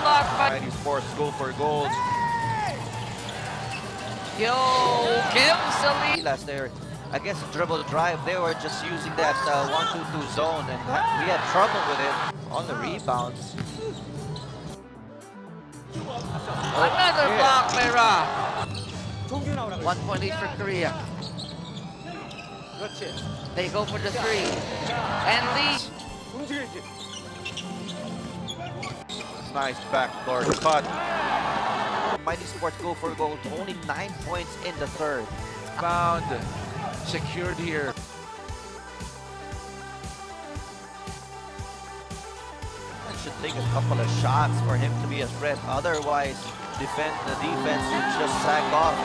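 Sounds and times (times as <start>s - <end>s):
background music: 0.0s - 49.0s
arena crowd hum: 1.8s - 6.2s, 16.0s - 18.6s, 30.8s - 32.2s, 43.0s - 49.0s
shoes squeaking on hardwood court: 13.0s - 14.8s, 18.6s - 19.2s, 21.0s - 24.0s, 25.9s - 29.6s, 45.4s - 46.7s.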